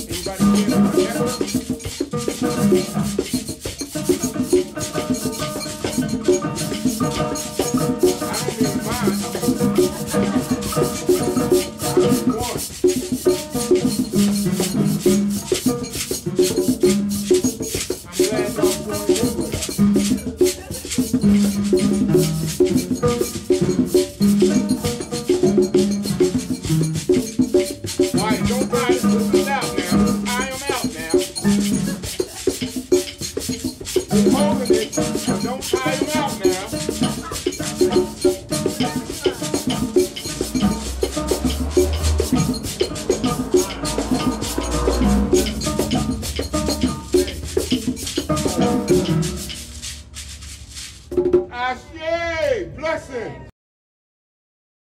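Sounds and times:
pitched tones: 0.0 - 50.8
shakers rattling: 0.0 - 51.5
hand percussion rhythm: 0.0 - 51.9
congas playing: 0.0 - 53.0.

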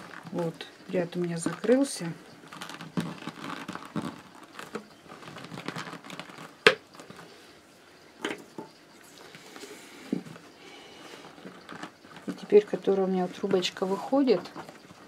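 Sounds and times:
rustling of paper tubes: 0.0 - 7.6, 9.0 - 15.0.

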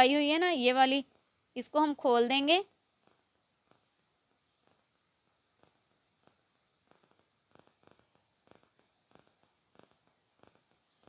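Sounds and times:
faint stitches ticking: 0.0 - 11.0.

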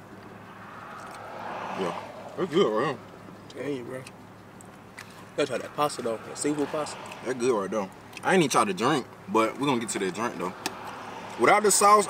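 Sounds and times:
vehicle passing by: 0.0 - 3.9, 5.2 - 7.9, 10.0 - 12.0.

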